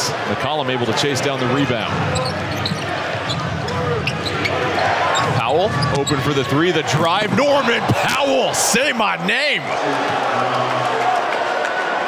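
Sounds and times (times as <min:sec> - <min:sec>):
voices: 0:00.0 - 0:11.0.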